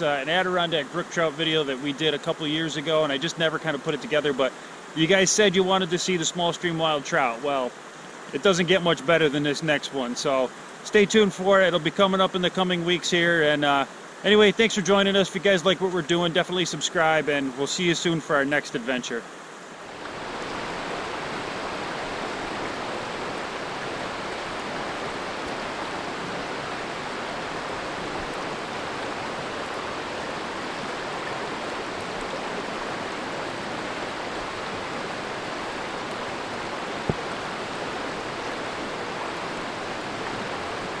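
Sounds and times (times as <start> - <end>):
creek water rushing over gravel: 0.0 - 41.0.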